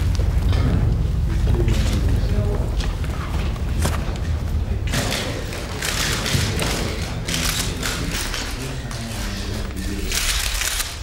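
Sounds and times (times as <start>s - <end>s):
crowd jostling thumps and rustling: 0.0s - 8.9s.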